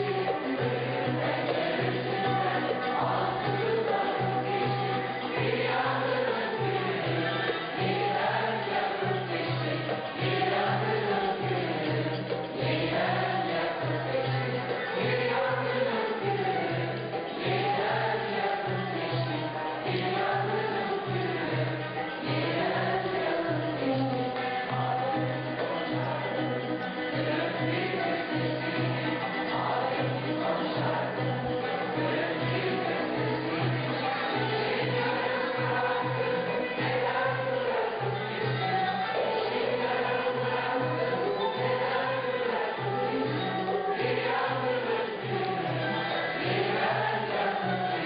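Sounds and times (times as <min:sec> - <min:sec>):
choir singing slow melody: 0:00.0 - 0:48.0.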